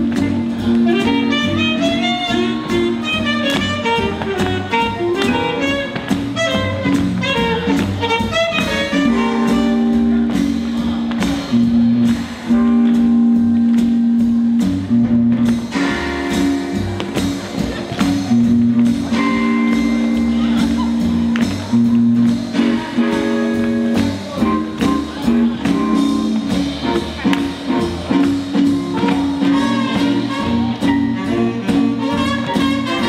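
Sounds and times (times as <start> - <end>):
saxophone and brass: 0.0 - 10.9, 15.7 - 33.0
drums beating: 0.0 - 33.0
jazz band playing: 0.0 - 33.0.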